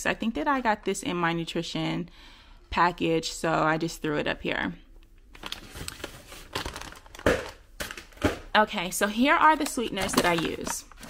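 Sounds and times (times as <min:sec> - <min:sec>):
plastic packaging crinkling: 0:05.3 - 0:08.3, 0:09.6 - 0:11.0.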